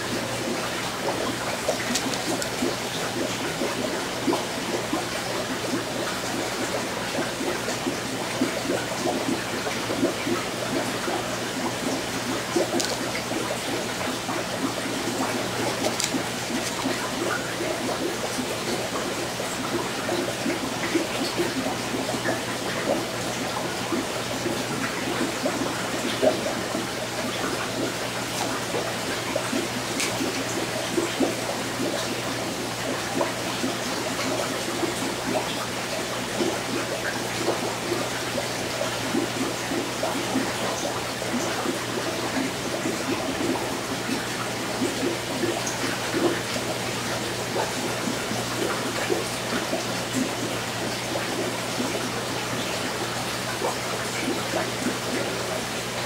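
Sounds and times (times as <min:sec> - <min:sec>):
water bubbling and trickling: 0:00.0 - 0:56.0.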